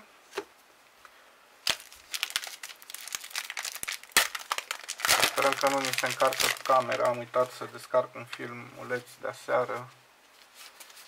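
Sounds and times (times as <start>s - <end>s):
foil pack crinkling and tearing: 1.6s - 7.5s.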